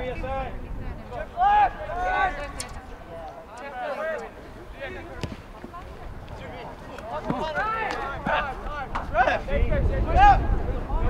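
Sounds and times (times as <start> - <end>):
soccer ball kick thud: 5.0 - 5.6.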